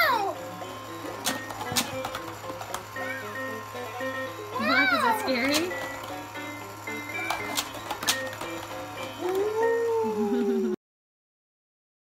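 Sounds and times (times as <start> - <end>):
electronic toy tune: 2.9 - 9.8.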